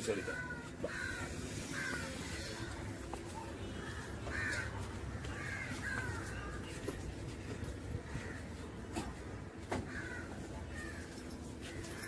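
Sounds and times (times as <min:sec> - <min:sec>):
crows cawing: 0:00.0 - 0:03.0, 0:03.7 - 0:06.8, 0:07.4 - 0:08.7, 0:09.8 - 0:12.0.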